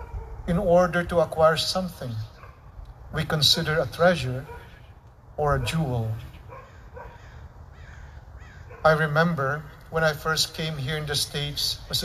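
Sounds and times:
faint crow cawing: 6.5s - 9.0s.

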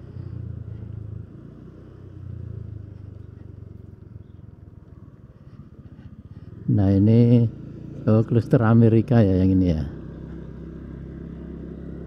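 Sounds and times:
motorcycle engine running slowly: 0.0s - 12.0s.

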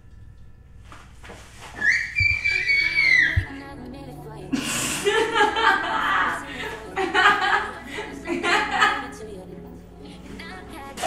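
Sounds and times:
high whistle-like gliding tone: 1.8s - 3.5s.

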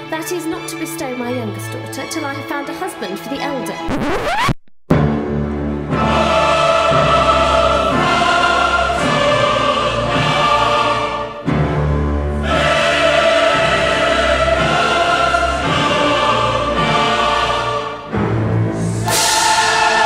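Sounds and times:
choir singing sustained chords: 5.3s - 20.0s.

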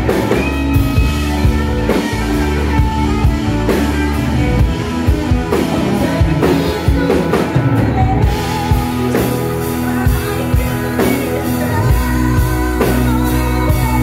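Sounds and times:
drum kit beat: 0.0s - 14.0s
electric guitar lead lines: 0.0s - 14.0s.

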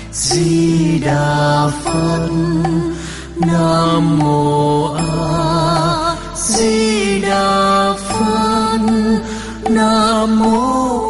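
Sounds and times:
slow melodic chanting: 0.0s - 11.0s.

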